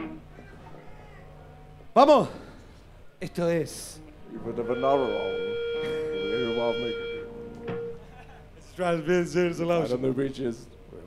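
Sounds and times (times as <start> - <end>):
electric guitar sustained note: 4.2 - 8.1.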